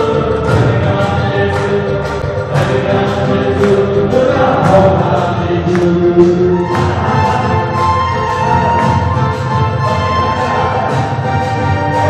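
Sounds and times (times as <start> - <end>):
group singing a hymn: 0.0 - 12.0
sharp beat: 0.0 - 12.0
voice through loudspeaker: 0.0 - 12.0.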